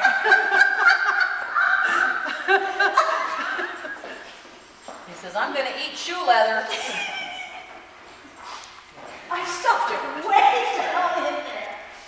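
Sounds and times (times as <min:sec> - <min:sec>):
woman laughing: 0:00.0 - 0:04.4, 0:06.6 - 0:07.9.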